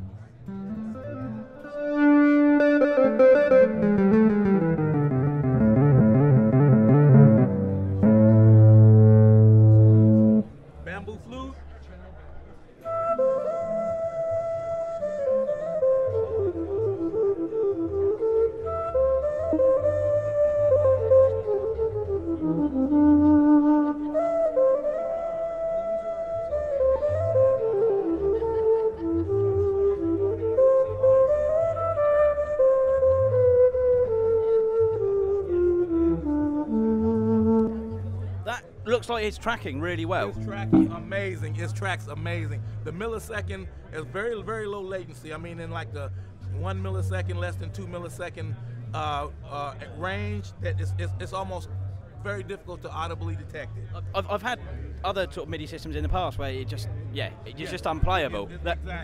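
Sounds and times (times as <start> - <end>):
synth lead notes: 0.5 - 10.5, 40.4 - 41.5.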